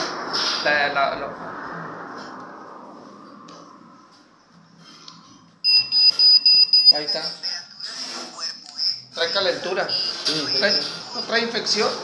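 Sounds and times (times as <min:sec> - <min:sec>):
thermometer high-pitched beeps: 0:05.6 - 0:07.0, 0:09.8 - 0:10.3.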